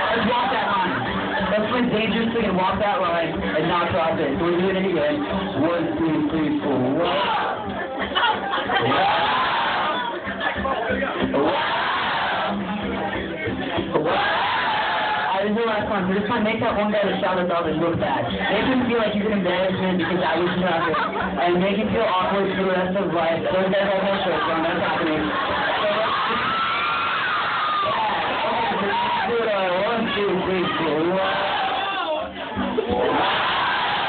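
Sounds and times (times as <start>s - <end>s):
room chatter: 0.0s - 34.0s
audience whooping and cheering: 8.7s - 10.2s, 11.4s - 12.6s, 14.0s - 15.4s, 25.2s - 34.0s.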